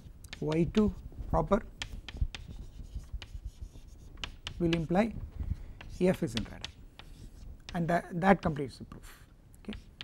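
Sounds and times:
chalk tapping and scratching: 0.0s - 8.8s, 9.6s - 10.0s.

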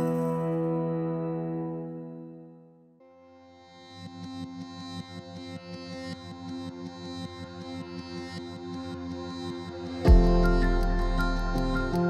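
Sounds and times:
ambient synthesizer music: 5.2s - 12.0s.

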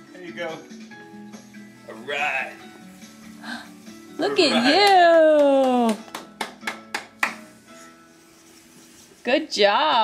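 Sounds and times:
faint background music: 0.0s - 10.0s
hands clapping: 4.6s - 7.5s.

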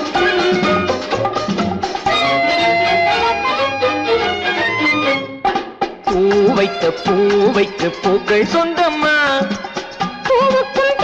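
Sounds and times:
instrumental film music: 0.0s - 11.0s.

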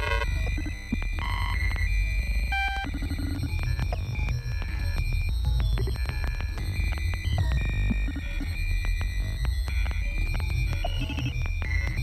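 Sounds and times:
glitchy clicks: 0.0s - 12.0s
sub-bass throb: 0.0s - 12.0s.

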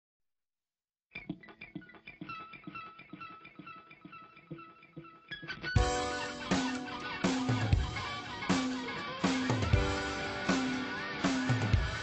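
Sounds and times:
rock band with drums: 1.2s - 12.0s.

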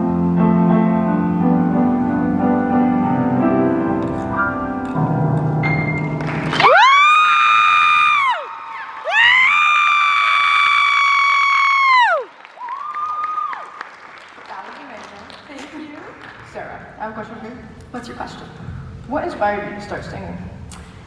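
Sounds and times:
grand piano notes ringing: 0.0s - 6.5s
audience applauding: 6.2s - 16.5s
loud high-pitched cheers: 6.5s - 13.8s.

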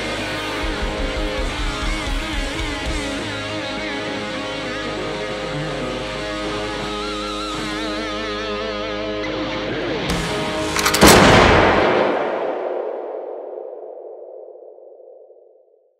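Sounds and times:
electric guitar with vibrato: 0.0s - 11.3s
sharp loud logo hit: 11.0s - 14.3s.

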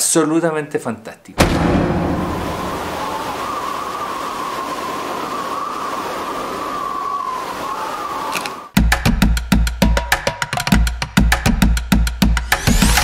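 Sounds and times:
steady rushing noise: 1.4s - 8.7s.

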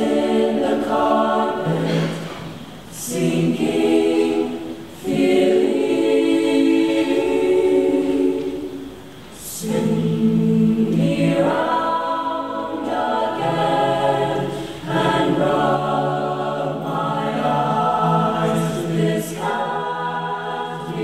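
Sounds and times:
choir singing a cappella: 0.0s - 21.0s.

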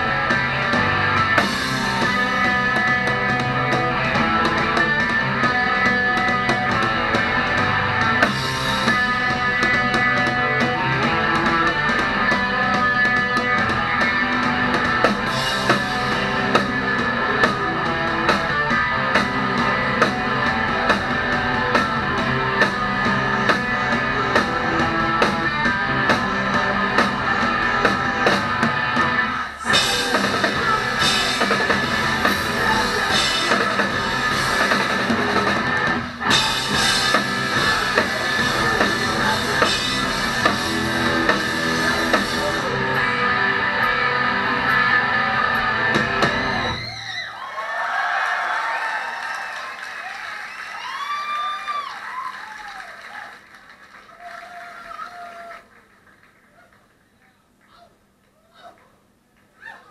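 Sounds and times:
electric guitar tones bending in pitch: 0.0s - 46.8s
live rock band playing: 0.0s - 47.0s.

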